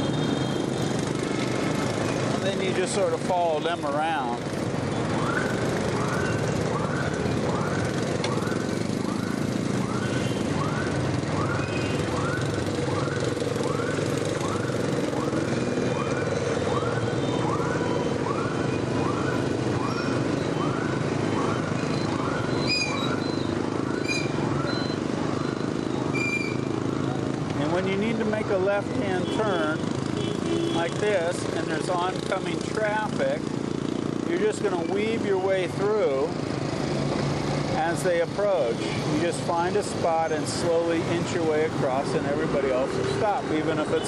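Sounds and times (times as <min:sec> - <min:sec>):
motorbike engine and road noise: 0:00.0 - 0:44.0.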